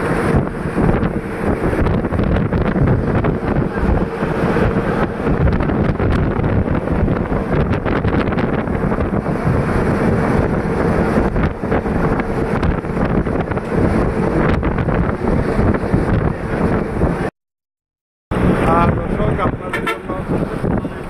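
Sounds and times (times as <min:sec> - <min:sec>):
road noise: 0:00.0 - 0:17.3, 0:18.3 - 0:21.0
wind rushing over microphone: 0:00.0 - 0:17.3, 0:18.3 - 0:21.0.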